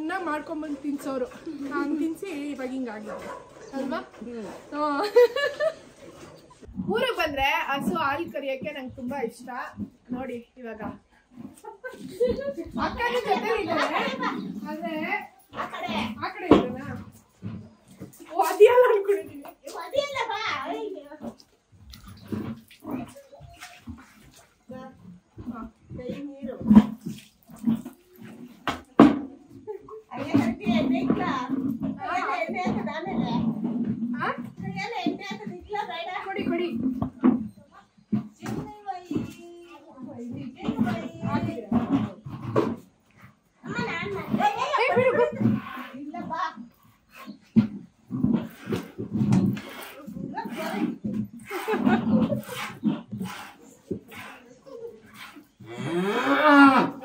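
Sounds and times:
milk squirting into plastic bucket: 0:26.6 - 0:28.9
cow lowing: 0:45.2 - 0:57.0.

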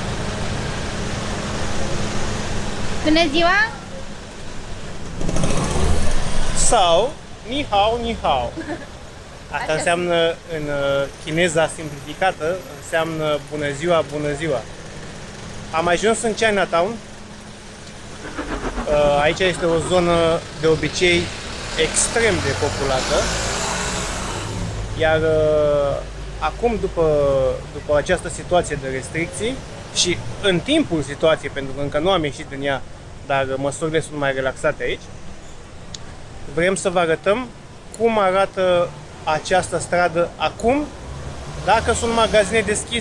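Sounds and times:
vehicle engine rumbling: 0:00.0 - 0:23.4.

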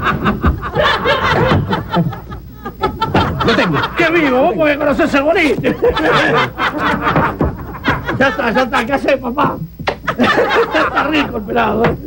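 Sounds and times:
audience laughter: 0:00.0 - 0:08.9, 0:10.0 - 0:11.4.

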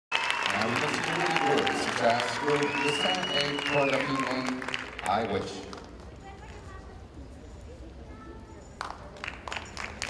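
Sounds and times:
audience applauding: 0:00.1 - 0:05.9, 0:08.8 - 0:10.0.

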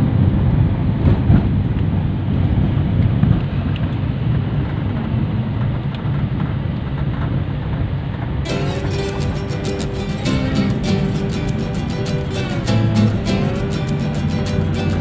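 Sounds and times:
vehicle road noise: 0:08.2 - 0:15.0.

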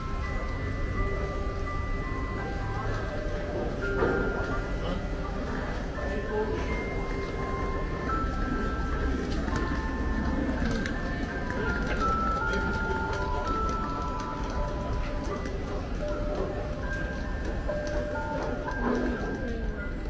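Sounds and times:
crowd talking: 0:00.0 - 0:20.0
slow chiming melody: 0:00.0 - 0:20.0.

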